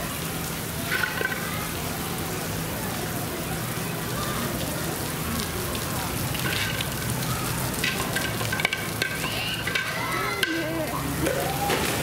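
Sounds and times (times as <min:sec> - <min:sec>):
water pouring into pool: 0:00.0 - 0:12.0.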